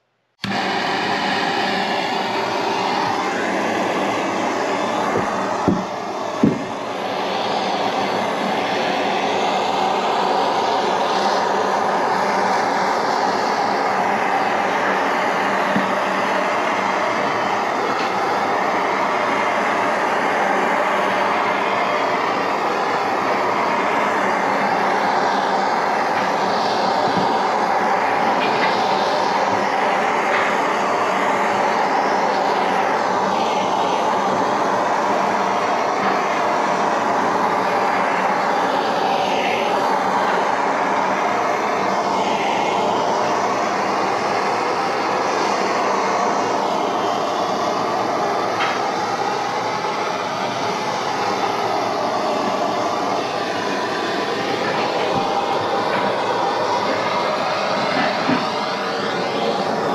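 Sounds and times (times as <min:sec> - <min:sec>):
gas torch hissing: 0:00.4 - 0:59.9.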